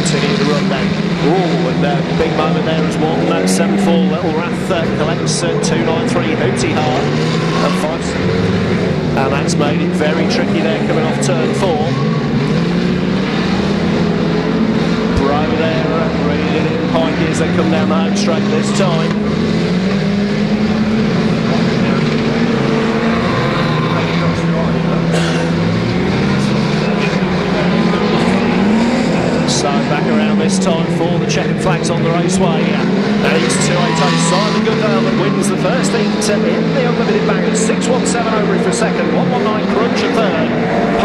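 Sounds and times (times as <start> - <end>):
racing car engines revving: 0.0 - 41.0.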